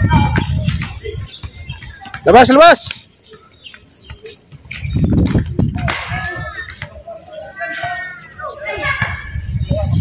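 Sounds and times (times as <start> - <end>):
players shouting calls: 0.0 - 4.5, 5.7 - 10.0.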